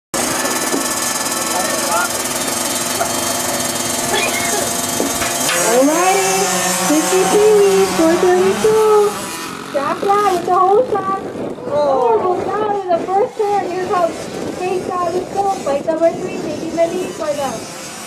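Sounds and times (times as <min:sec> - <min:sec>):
dirt bike engines running: 0:00.2 - 0:18.0
engine revving whine: 0:00.2 - 0:18.0.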